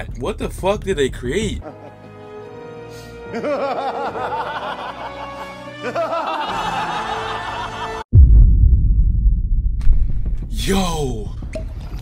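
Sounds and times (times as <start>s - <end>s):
background music: 0.0s - 8.1s
man laughing theatrically: 1.6s - 2.1s, 3.3s - 8.0s.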